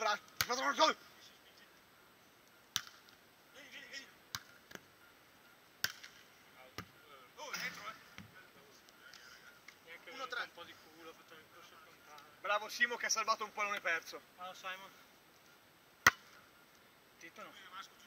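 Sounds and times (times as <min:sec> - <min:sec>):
volleyball slaps: 0:00.3 - 0:00.7, 0:02.7 - 0:03.2, 0:04.3 - 0:04.9, 0:05.8 - 0:06.2, 0:16.0 - 0:16.4.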